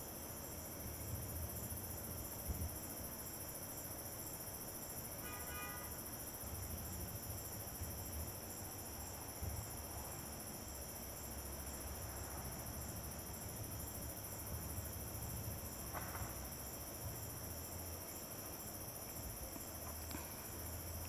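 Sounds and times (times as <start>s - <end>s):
crickets trilling: 0.0s - 21.0s.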